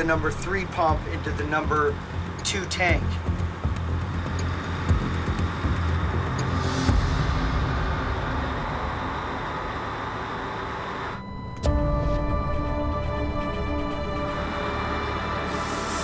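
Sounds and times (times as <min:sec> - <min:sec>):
background music: 0:00.0 - 0:10.4, 0:11.2 - 0:16.0
machinery hum: 0:00.0 - 0:16.0.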